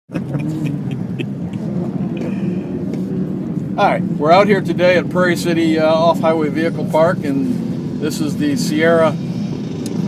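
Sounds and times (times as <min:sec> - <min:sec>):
vehicle engines humming: 0:00.1 - 0:10.0.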